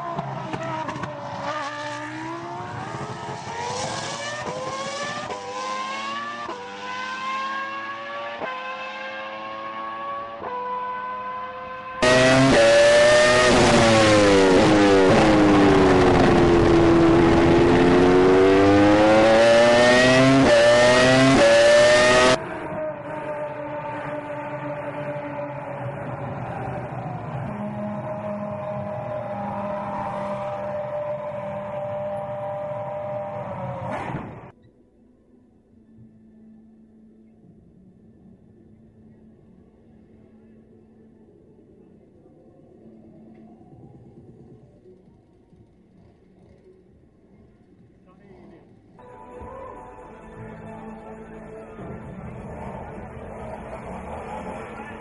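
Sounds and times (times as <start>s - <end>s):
racing car engine accelerating: 0.0s - 34.6s, 51.7s - 55.0s.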